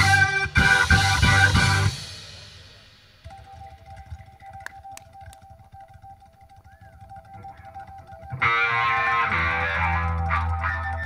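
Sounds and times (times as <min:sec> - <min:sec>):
rock band playing loud: 0:00.0 - 0:04.6, 0:08.1 - 0:11.0
faint clicks: 0:03.2 - 0:11.0.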